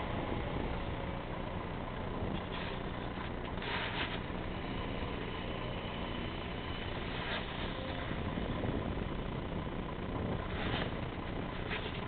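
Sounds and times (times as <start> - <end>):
faint high whine: 0.0 - 12.0
vehicle engine and road rumble: 0.0 - 12.0.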